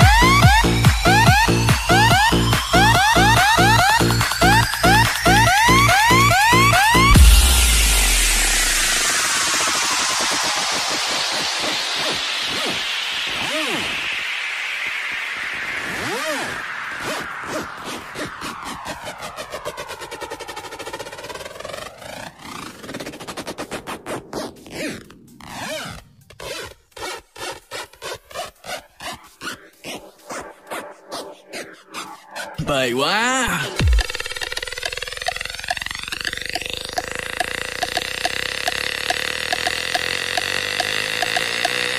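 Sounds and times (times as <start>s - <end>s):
choppy stuttering pattern: 0.0s - 26.0s, 28.6s - 41.9s
falling hissing noise sweep: 7.2s - 20.7s
swirling whooshing effect: 29.4s - 32.6s.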